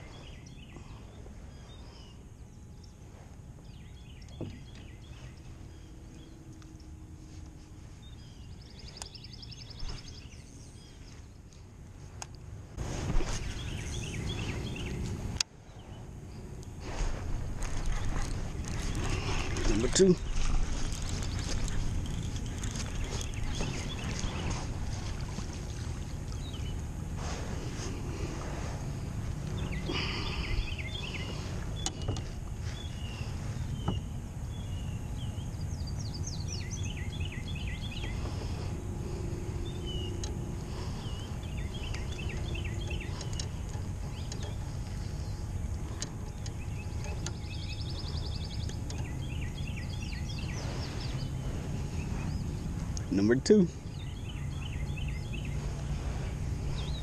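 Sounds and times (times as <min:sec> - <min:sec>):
birds calling: 0:00.0 - 0:12.1, 0:13.0 - 0:57.0
electric trolling motor humming: 0:13.4 - 0:57.0.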